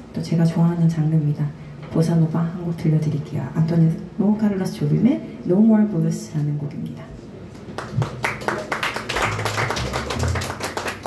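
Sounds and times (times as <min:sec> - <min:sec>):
upright bass notes: 0:09.2 - 0:11.0.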